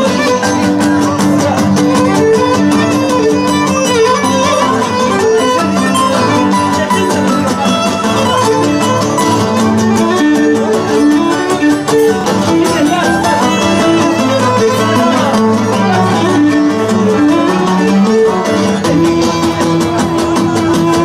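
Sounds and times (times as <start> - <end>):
bowed lyra melody: 0.0 - 21.0
strummed lutes: 0.0 - 21.0.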